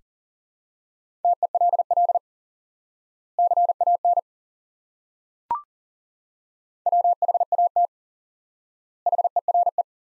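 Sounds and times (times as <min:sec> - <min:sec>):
morse code beeps: 0:09.1 - 0:09.8.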